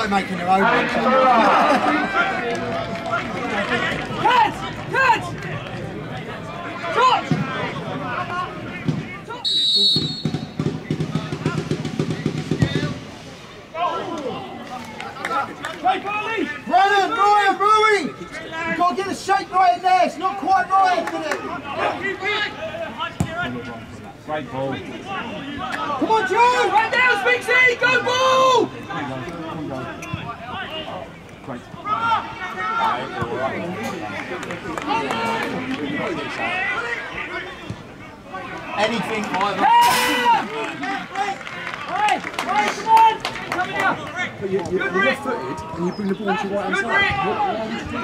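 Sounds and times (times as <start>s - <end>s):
open-air background noise: 0.0s - 48.0s
referee's whistle blast: 9.4s - 10.6s.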